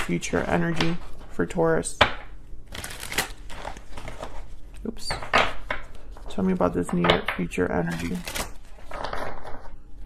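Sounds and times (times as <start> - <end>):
cards being shuffled: 2.7 - 4.9, 7.8 - 9.6.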